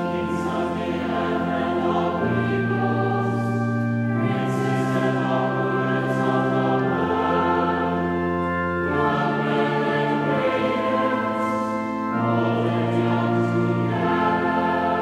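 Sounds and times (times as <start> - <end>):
church choir singing: 0.0 - 15.0
pipe organ: 0.0 - 15.0.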